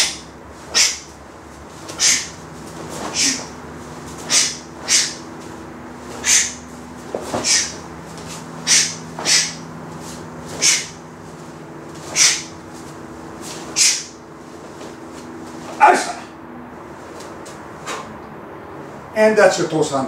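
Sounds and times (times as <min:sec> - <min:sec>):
faint steady hum: 0:00.0 - 0:20.0.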